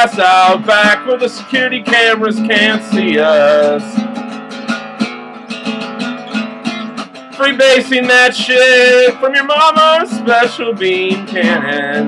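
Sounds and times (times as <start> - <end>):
guitar strumming: 0.0 - 12.0.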